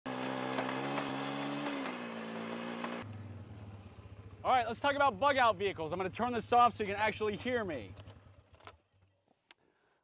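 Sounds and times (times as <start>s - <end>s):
quad bike engine running: 0.1s - 8.8s
quad bike idling: 0.2s - 8.7s.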